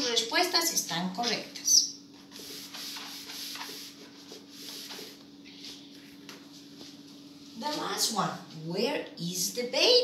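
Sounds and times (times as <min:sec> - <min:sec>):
marker writing on whiteboard: 0:01.2 - 0:05.2.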